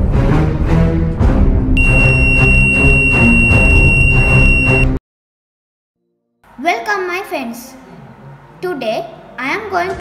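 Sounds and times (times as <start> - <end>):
high-pitched electronic buzzer: 1.8 - 5.0.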